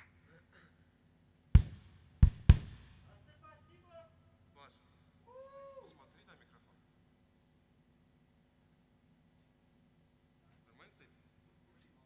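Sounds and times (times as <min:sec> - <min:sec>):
faint short cry: 0:05.2 - 0:06.0.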